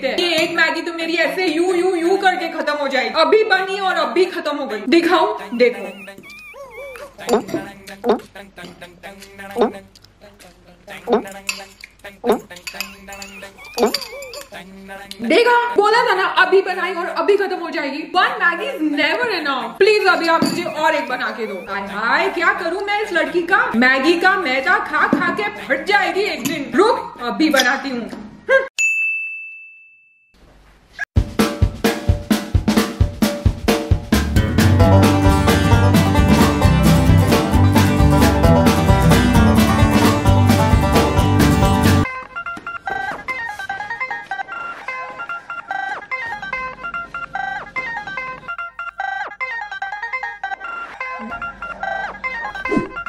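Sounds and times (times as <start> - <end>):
whiny wavering whimper: 5.4 - 8.1, 13.0 - 14.6, 20.4 - 22.4, 42.1 - 53.0
bell-like chime ding: 28.8 - 30.3.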